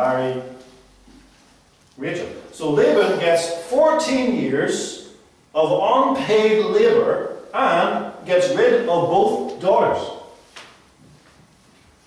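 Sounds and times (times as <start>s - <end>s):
man speaking: 0.0s - 0.6s, 2.0s - 10.4s.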